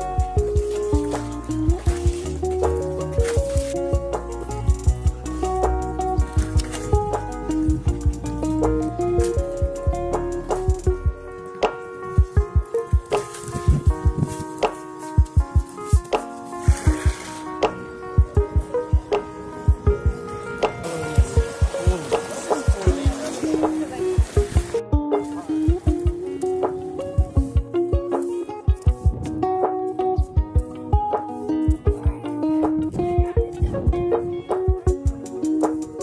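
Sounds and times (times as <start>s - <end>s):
background music: 0.0s - 36.0s
low drum thumps: 3.4s - 11.3s, 12.2s - 16.2s, 18.2s - 23.2s, 28.7s - 29.4s, 33.1s - 35.3s.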